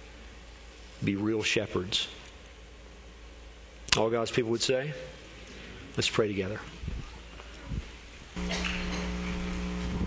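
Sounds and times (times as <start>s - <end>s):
room tone with low hum: 0.0s - 10.0s
man speaking: 1.0s - 2.2s, 3.9s - 5.2s, 6.0s - 6.8s.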